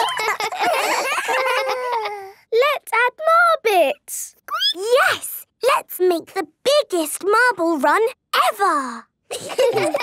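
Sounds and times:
cartoon children laughing: 0:00.0 - 0:02.4, 0:09.3 - 0:10.0.

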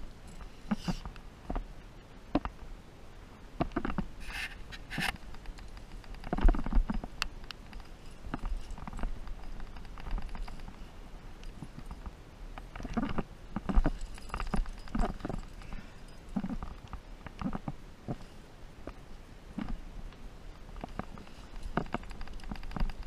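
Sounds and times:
climbing gear knocking on rock: 0:20.8 - 0:23.0.

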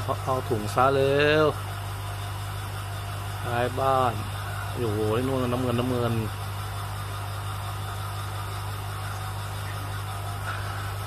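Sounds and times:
aquarium pump humming: 0:00.0 - 0:11.0.

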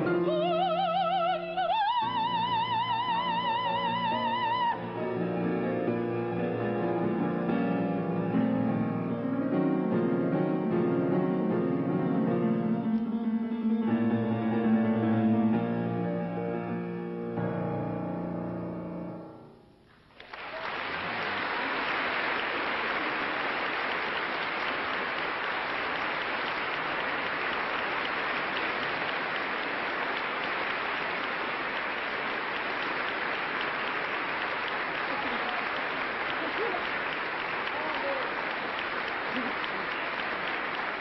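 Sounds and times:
audience applauding: 0:19.8 - 0:41.0.

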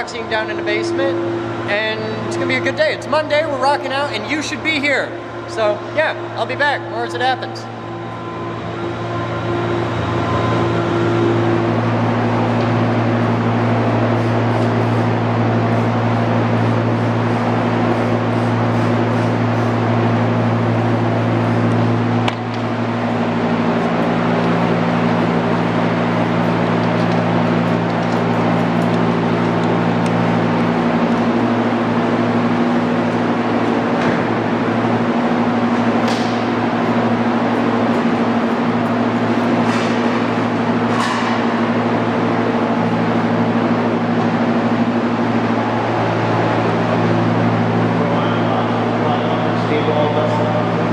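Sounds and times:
droning hum of held tones: 0:00.0 - 0:50.9.

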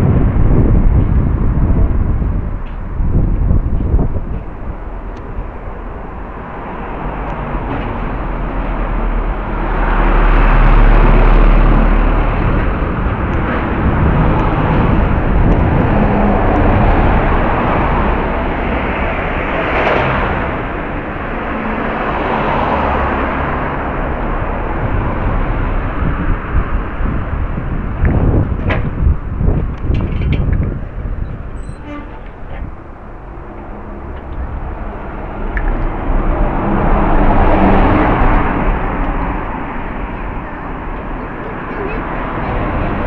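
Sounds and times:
vehicles passing on a street: 0:00.0 - 0:43.0.

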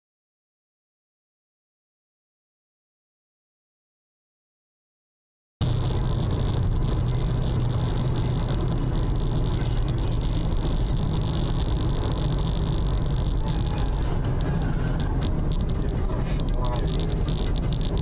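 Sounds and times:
car road and engine noise: 0:05.6 - 0:18.0.

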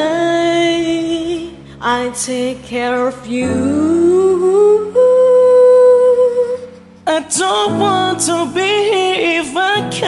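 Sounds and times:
soft karaoke backing track: 0:00.0 - 0:10.0.

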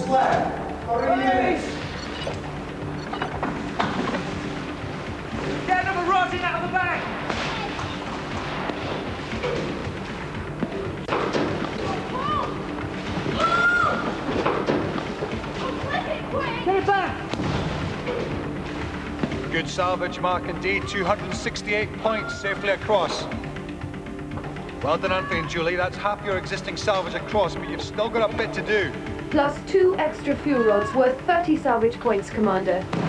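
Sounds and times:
background music with low drone: 0:00.0 - 0:33.0
people shouting: 0:06.3 - 0:08.3, 0:11.8 - 0:14.3, 0:22.0 - 0:22.6, 0:24.9 - 0:25.7, 0:30.2 - 0:31.2.

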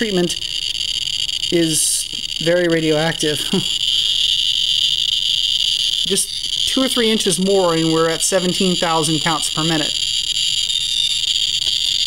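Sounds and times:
geiger counter buzzing clicks: 0:00.0 - 0:12.0.

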